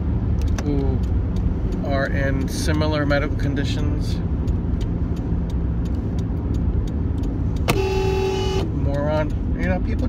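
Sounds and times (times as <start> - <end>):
engine and road rumble in car: 0.0 - 10.0
car horn: 7.6 - 8.8.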